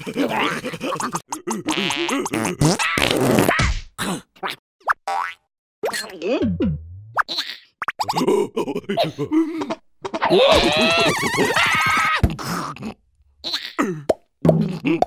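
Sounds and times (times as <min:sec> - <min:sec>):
cartoon voices gibberish: 0:10.2 - 0:15.0.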